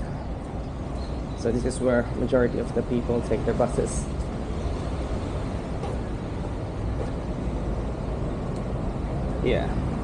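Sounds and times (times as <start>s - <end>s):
buses running: 0.0s - 10.0s
low rumble of street traffic: 0.0s - 10.0s.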